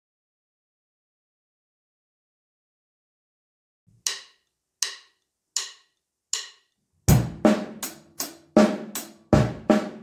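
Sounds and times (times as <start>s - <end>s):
count-in clicks: 4.0s - 6.8s.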